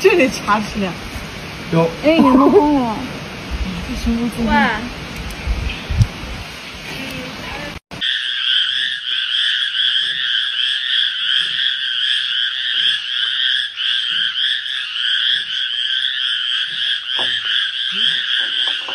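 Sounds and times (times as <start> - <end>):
frogs trilling: 2.1 - 2.8, 8.0 - 18.9.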